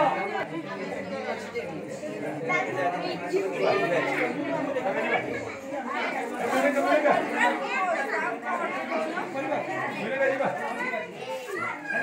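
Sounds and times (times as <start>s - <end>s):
overlapping background chatter: 0.0s - 12.0s.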